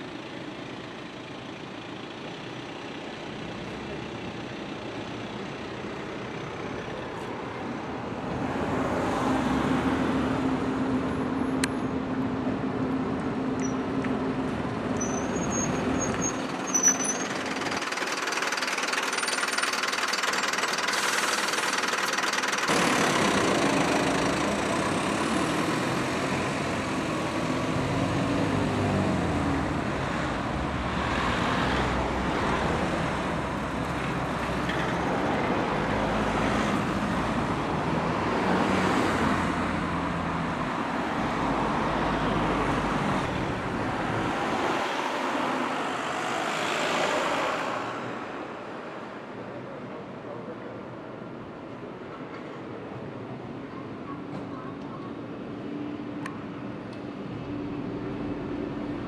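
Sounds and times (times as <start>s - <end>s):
bus diesel engine passing: 0.0s - 59.0s
road traffic: 0.0s - 59.0s.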